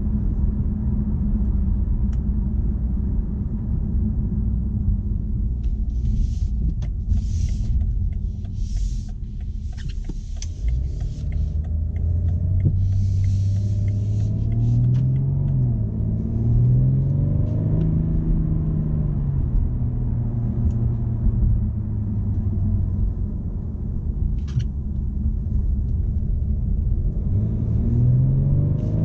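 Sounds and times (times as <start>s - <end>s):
car engine accelerating: 0.0s - 29.0s
road noise: 0.0s - 29.0s.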